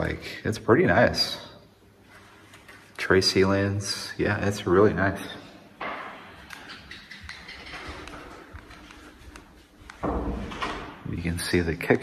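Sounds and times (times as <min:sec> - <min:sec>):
footsteps on laminate floor: 0:07.2 - 0:10.6.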